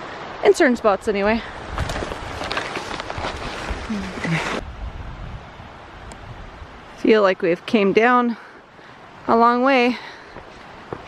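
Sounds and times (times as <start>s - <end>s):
branches and leaves brushing: 1.4s - 4.8s.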